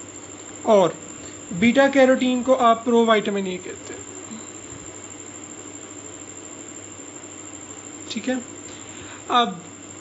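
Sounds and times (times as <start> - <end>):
faint low hum: 0.0 - 6.7
steady background hiss: 0.0 - 10.0.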